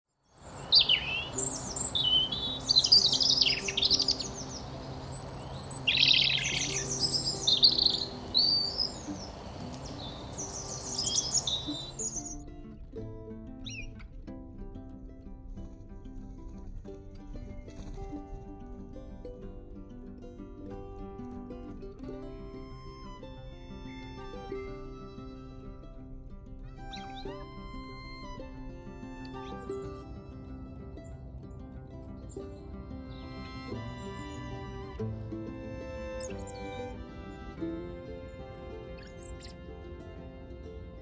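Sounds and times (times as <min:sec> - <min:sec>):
robin singing: 0:00.3 - 0:12.8, 0:13.6 - 0:14.1, 0:22.3 - 0:41.0
soft background music: 0:00.7 - 0:41.0.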